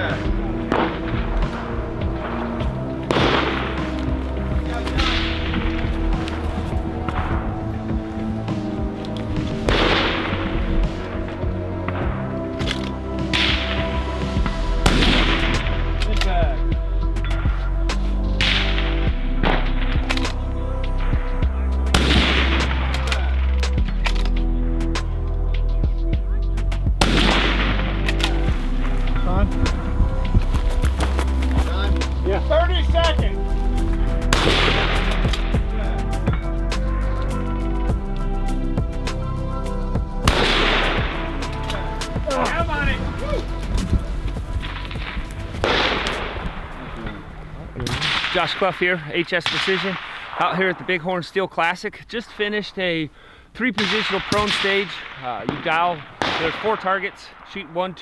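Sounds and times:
background music with bass line: 0:00.0 - 0:48.5
rifle shots with echo: 0:09.7 - 0:10.6, 0:27.0 - 0:28.4, 0:34.3 - 0:35.5, 0:40.2 - 0:41.2, 0:44.7 - 0:47.0, 0:47.8 - 0:48.7, 0:49.4 - 0:50.8, 0:53.8 - 0:57.5.

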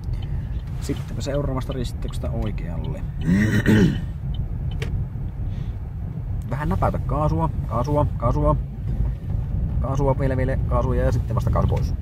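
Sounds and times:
car engine and road noise: 0:00.0 - 0:12.0
person clearing throat: 0:03.2 - 0:04.1.

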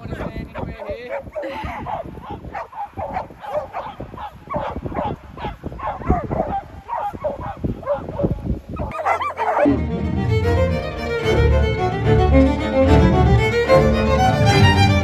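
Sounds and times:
dogs barking and yipping: 0:00.0 - 0:09.9
violin music: 0:09.4 - 0:15.0.

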